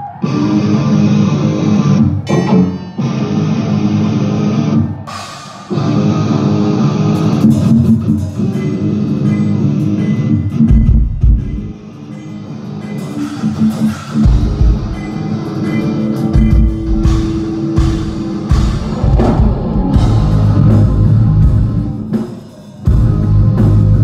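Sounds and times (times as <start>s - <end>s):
distorted electric guitar riff: 0.0s - 24.0s
drums: 0.0s - 24.0s.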